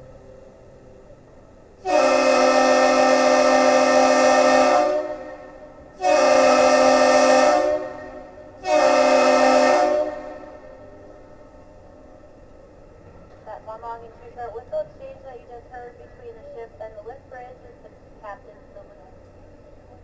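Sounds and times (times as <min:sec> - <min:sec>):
air horn chord blasts: 0:01.8 - 0:10.9.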